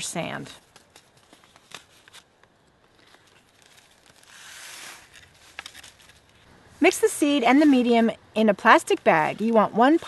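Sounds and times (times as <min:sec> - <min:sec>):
plastic bag rustling: 0:00.6 - 0:06.5.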